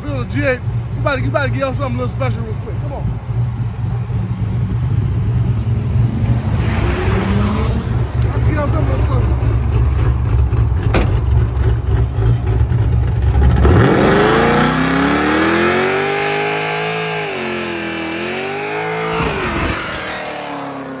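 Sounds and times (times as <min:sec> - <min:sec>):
car engine revving: 0:00.0 - 0:21.0.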